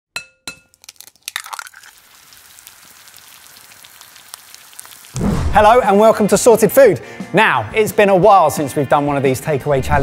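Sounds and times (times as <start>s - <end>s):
eggshell crackling and breaking: 0.6s - 5.2s
egg sizzling in a pan: 0.7s - 5.2s.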